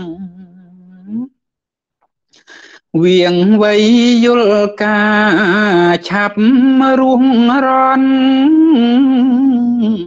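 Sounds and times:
man chanting: 2.9 - 10.0.

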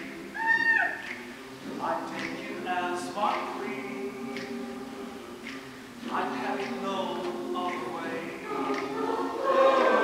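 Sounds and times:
choir soft sustained chord: 1.3 - 10.0.

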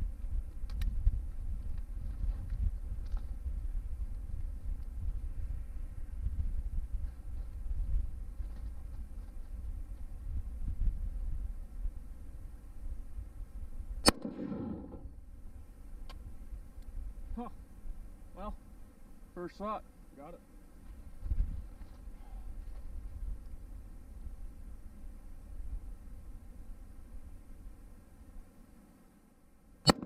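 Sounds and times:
wind rumble on microphone: 0.0 - 18.1, 20.9 - 27.8
rifle shot with echo: 14.0 - 15.2.

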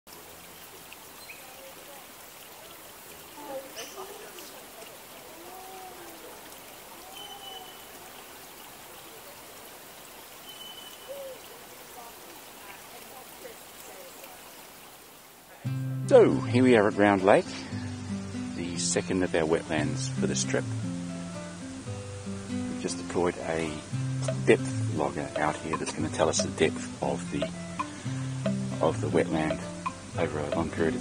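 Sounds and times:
faint steady hiss: 0.1 - 31.0
bird calls and whistles: 7.0 - 8.0, 10.4 - 11.6.

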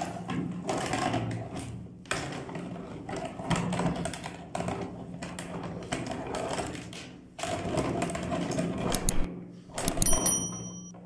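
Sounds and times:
sharp clicks: 8.9 - 10.2.

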